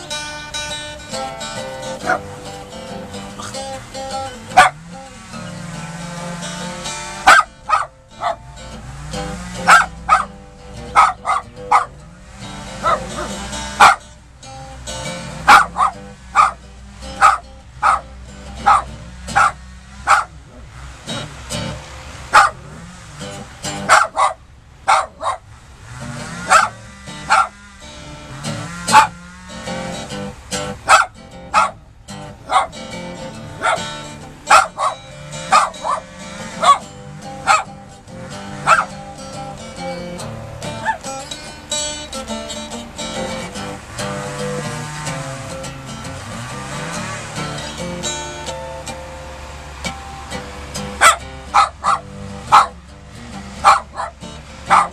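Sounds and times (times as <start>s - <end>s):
strummed acoustic guitar blues: 0.0s - 54.9s
small dog barking: 1.3s - 2.4s, 4.2s - 5.6s, 6.4s - 8.5s, 9.5s - 12.0s, 12.7s - 14.1s, 15.2s - 25.5s, 26.3s - 27.6s, 28.5s - 29.3s, 30.6s - 39.2s, 39.8s - 41.1s, 50.9s - 52.9s, 53.5s - 54.9s.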